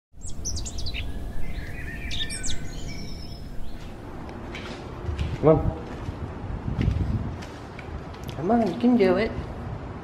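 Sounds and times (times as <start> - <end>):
birds chirping and singing: 0.2 - 4.1.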